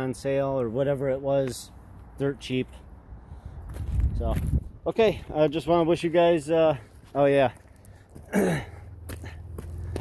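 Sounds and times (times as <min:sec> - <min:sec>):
footsteps on gravel: 0:03.6 - 0:10.0
man coughing: 0:08.2 - 0:09.4.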